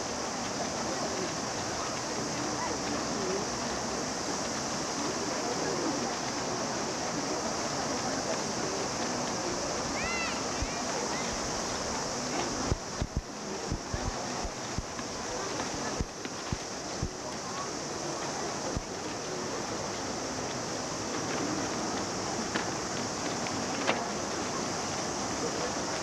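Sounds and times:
constant hiss: 0.0 - 26.0
faint distant voices: 0.0 - 26.0.

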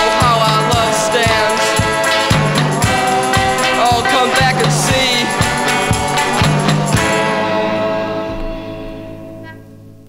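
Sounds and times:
garage rock chord ringing: 0.0 - 10.0.

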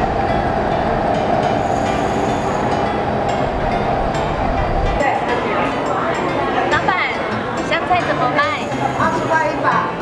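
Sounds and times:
market hall din: 0.0 - 10.0.

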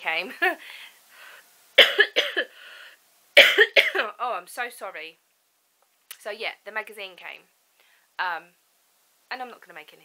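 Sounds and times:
woman coughing: 1.8 - 2.5, 3.4 - 4.1.

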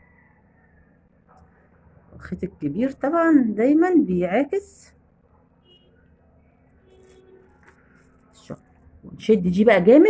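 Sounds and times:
beads and thread handling: 6.9 - 8.3.

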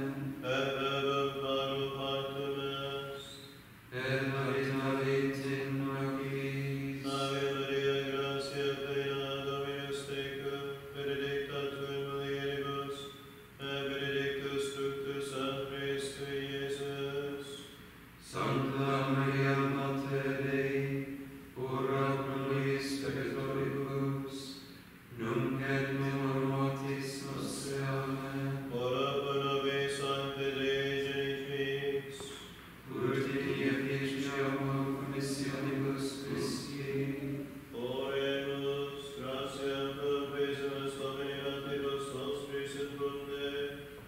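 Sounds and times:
men chanting: 0.0 - 17.6, 18.2 - 43.8.

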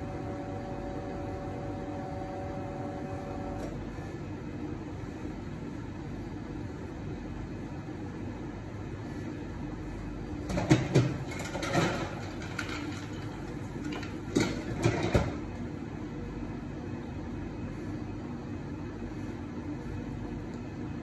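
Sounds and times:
espresso machine humming: 0.0 - 3.6.

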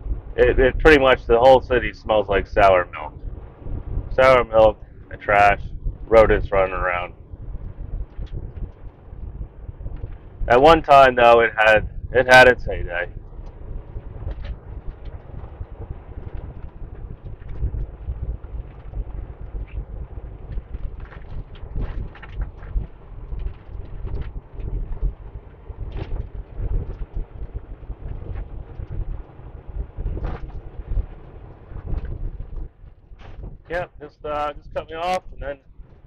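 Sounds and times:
truck engine and road rumble: 0.0 - 36.0
small clicks and knocks: 20.4 - 29.3.

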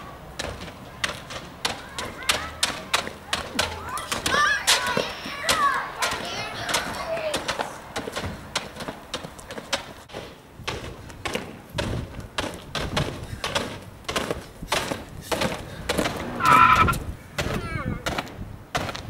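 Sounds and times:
children calling out: 0.0 - 7.9
rubber balls bouncing on pavement: 0.0 - 19.0.

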